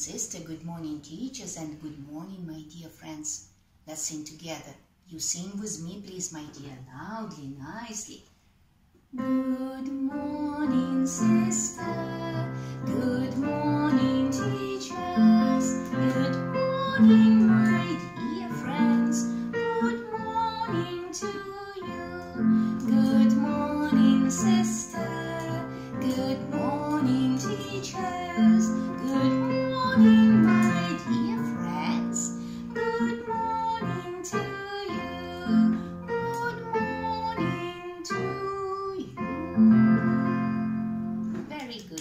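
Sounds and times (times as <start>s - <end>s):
woman singing: 9.2s - 41.0s
digital piano playing: 10.2s - 38.5s, 39.2s - 41.4s.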